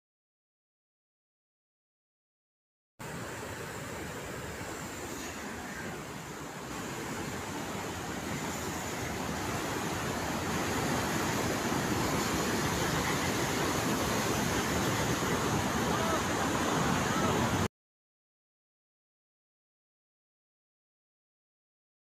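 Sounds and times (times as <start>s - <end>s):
river floodwater rushing: 3.0s - 17.7s.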